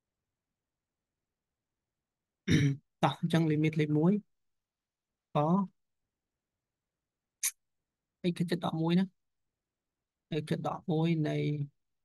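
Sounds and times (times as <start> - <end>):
person clearing throat: 2.5 - 2.8.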